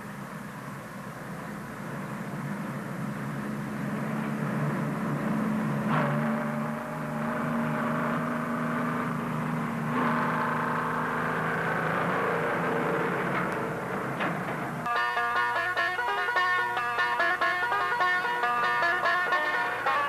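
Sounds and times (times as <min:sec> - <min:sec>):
truck engine approaching: 0:00.0 - 0:20.0.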